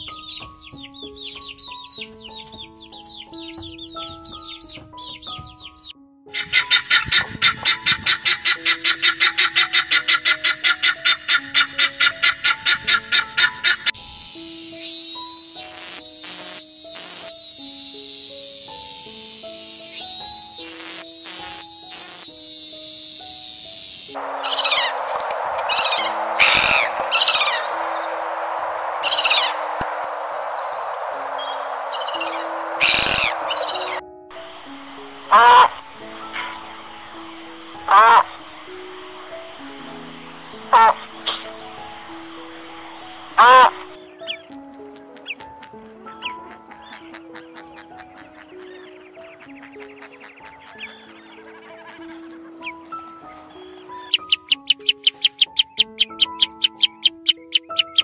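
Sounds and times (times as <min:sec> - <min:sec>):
chick peeping: 0:00.0 - 0:34.0, 0:43.4 - 0:58.0
background music: 0:00.0 - 0:58.0
cicada buzzing: 0:06.4 - 0:34.0, 0:44.0 - 0:58.0
guineafowl harsh calls: 0:06.4 - 0:34.0, 0:35.3 - 0:35.7, 0:37.9 - 0:38.2, 0:40.7 - 0:41.0, 0:43.4 - 0:43.7, 0:44.3 - 0:58.0
surf washing: 0:24.2 - 0:34.0.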